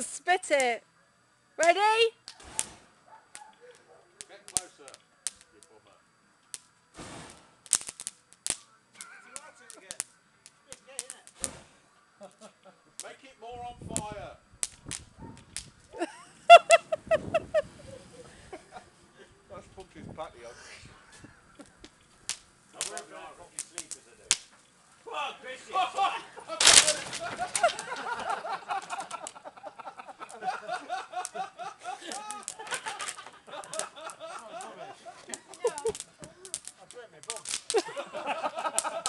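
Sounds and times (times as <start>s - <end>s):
burning wood crackling: 0.0s - 39.0s
fire pops and cracks: 1.6s - 17.6s, 21.2s - 24.8s, 25.8s - 39.0s.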